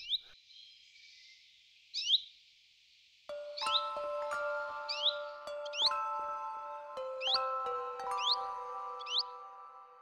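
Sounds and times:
small bird chirping: 0:00.0 - 0:02.4, 0:03.4 - 0:06.3, 0:07.1 - 0:09.7
soft chime-like music: 0:03.3 - 0:10.0.

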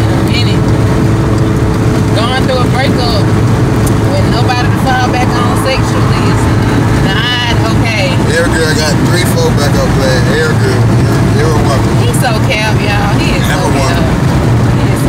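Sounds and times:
people's voices: 0:00.0 - 0:00.7, 0:02.1 - 0:15.0
car cabin drone: 0:00.0 - 0:15.0.

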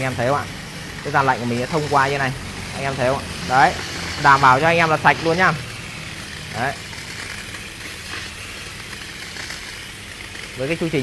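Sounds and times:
cleaning machine humming: 0:00.0 - 0:11.0
hot water spraying hiss: 0:00.0 - 0:11.0.

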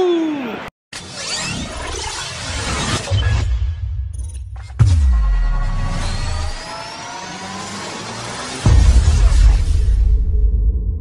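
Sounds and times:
loud bass hit: 0:04.8 - 0:06.4, 0:08.6 - 0:11.0
heavy hit with falling boom: 0:04.8 - 0:06.5, 0:08.6 - 0:11.0
rising tones: 0:05.0 - 0:08.8.

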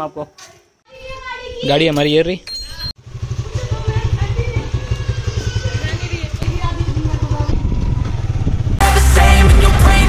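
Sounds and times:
motorcycle engine running: 0:03.0 - 0:10.0.

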